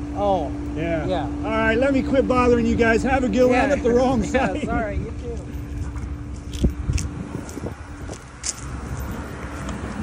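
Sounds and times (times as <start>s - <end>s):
engine running rumble: 0.0s - 10.0s
footsteps on grass: 5.7s - 10.0s.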